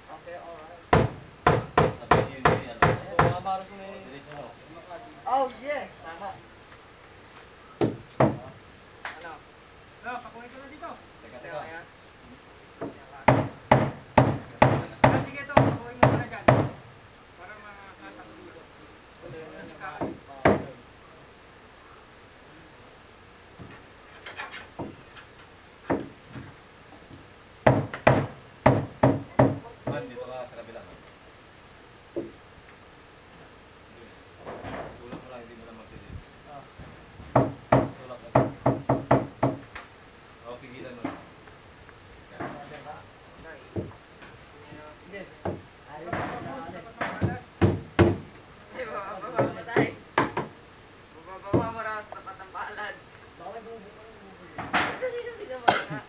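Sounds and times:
hammer striking wood: 0.9 - 3.4, 7.8 - 8.5, 12.8 - 16.8, 20.0 - 20.7, 25.9 - 26.2, 27.6 - 30.0, 37.3 - 39.6, 45.4 - 46.4, 47.0 - 48.3, 49.4 - 50.5.

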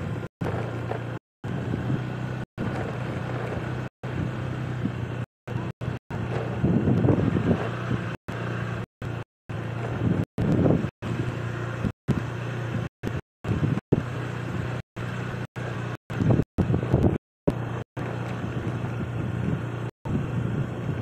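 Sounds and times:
wind noise: 0.0 - 8.2, 9.1 - 14.8, 16.1 - 21.0
car engine and road rumble: 0.0 - 21.0.

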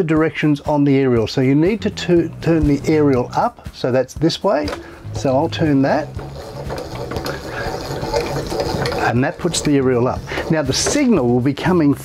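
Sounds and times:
hand winder gear winding: 4.7 - 11.3.

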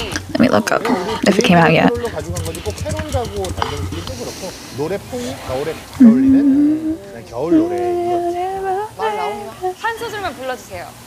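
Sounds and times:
man talking: 1.8 - 9.7
faint hiss: 2.4 - 11.0.

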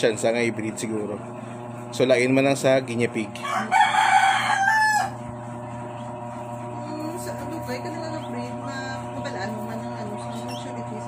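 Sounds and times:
rooster crowing: 3.4 - 5.3.

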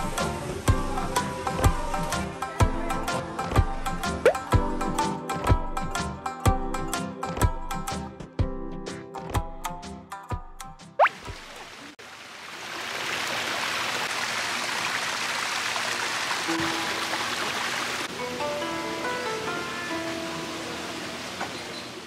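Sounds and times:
music of sustained notes: 16.5 - 21.2.

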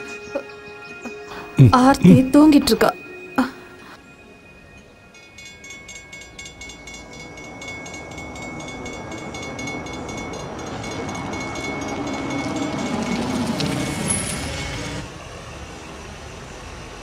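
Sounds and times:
railroad crossing bell ringing: 1.8 - 15.1.

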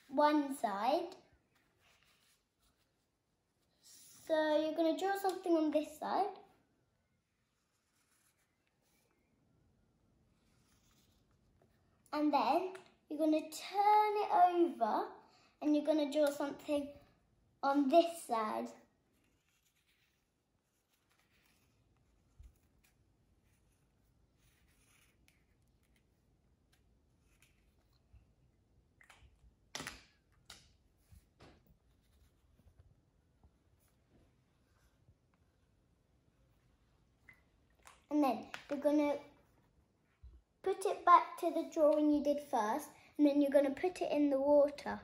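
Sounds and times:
marker scratching on tissue: 1.5 - 3.8, 7.4 - 9.2, 19.0 - 28.0.

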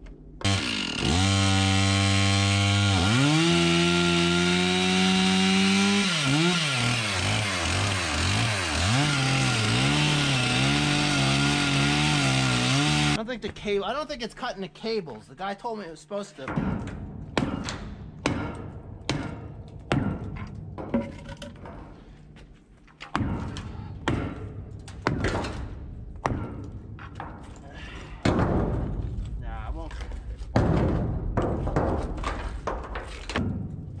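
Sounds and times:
hammer striking concrete: 16.5 - 20.6, 26.2 - 26.8.

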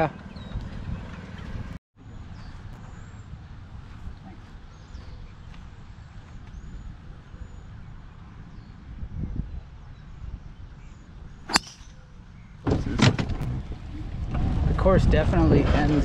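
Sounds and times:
wind rumble on microphone: 0.0 - 16.0
high bird chirps: 11.0 - 12.6.

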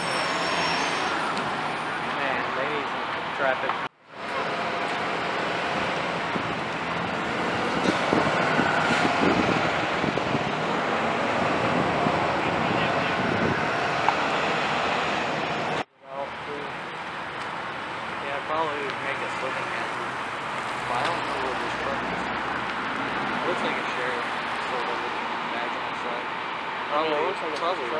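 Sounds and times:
vehicles driving past: 0.0 - 27.9.

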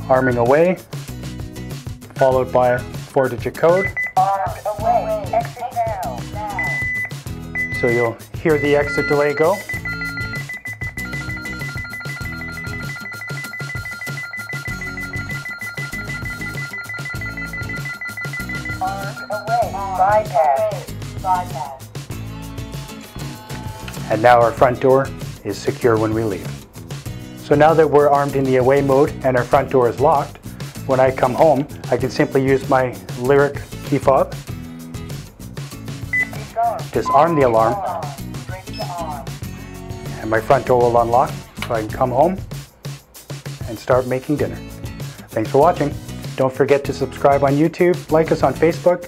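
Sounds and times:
background music: 0.0 - 49.0
rapid high beeps: 3.8 - 4.2, 6.5 - 19.8, 36.1 - 37.8
short electronic beep: 6.6 - 10.9, 36.1 - 36.4, 37.0 - 37.8.

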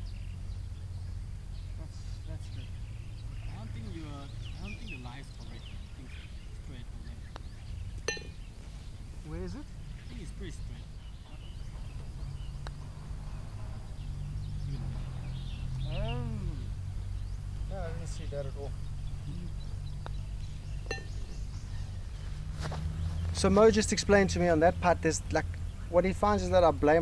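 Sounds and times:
putter striking golf ball: 7.4 - 8.5, 20.8 - 21.5.

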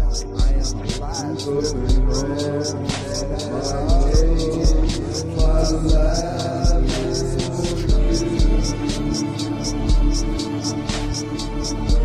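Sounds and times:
hi-hat hits: 0.0 - 12.0.

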